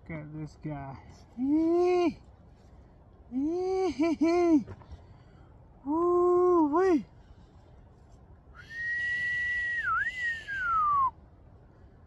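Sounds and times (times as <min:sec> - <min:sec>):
man whistling: 0:08.6 - 0:11.2.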